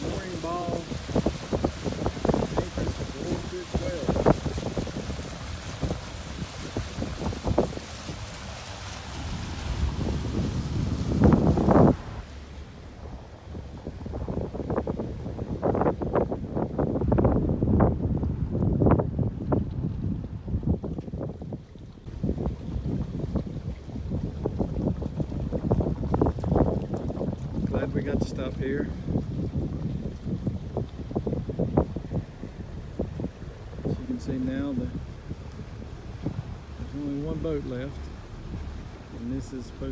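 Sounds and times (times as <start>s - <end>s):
boat wake hiss: 0.0s - 17.7s, 21.4s - 39.9s
wind buffeting microphone: 0.0s - 39.9s.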